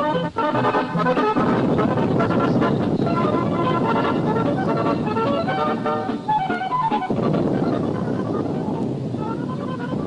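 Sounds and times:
dense steady rumbling noise: 0.0s - 10.0s
music: 0.0s - 10.0s.

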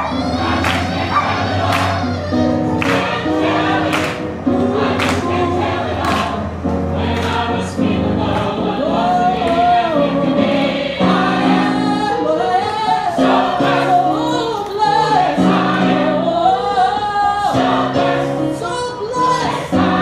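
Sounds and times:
gospel choir singing: 0.0s - 20.0s.

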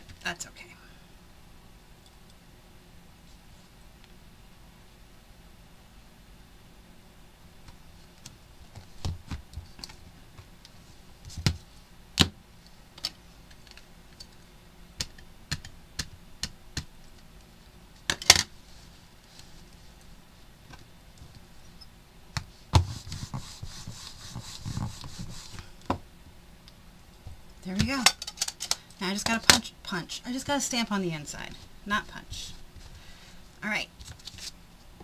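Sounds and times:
ink pad dabbing patter: 22.8s - 25.6s.

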